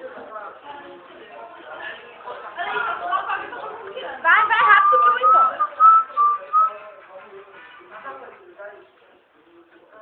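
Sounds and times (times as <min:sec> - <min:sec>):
faint voices: 0:00.0 - 0:10.0
person whistling: 0:04.8 - 0:06.8.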